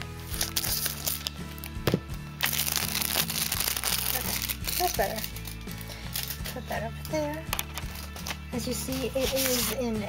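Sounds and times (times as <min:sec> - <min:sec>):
background music: 0:00.0 - 0:10.0
plastic shrink-wrap crinkling: 0:00.2 - 0:01.8, 0:02.4 - 0:06.6.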